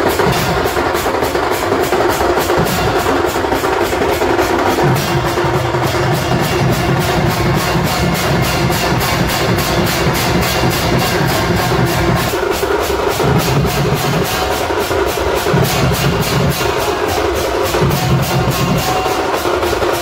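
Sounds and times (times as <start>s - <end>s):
cymbals crashing: 0.0s - 20.0s
drums beating: 0.0s - 20.0s.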